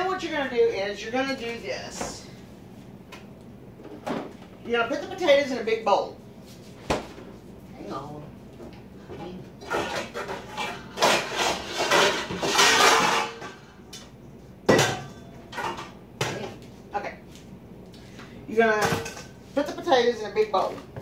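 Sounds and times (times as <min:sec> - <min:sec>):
bowls and dishes clattering: 0:09.6 - 0:13.8, 0:14.7 - 0:16.6, 0:18.8 - 0:19.4.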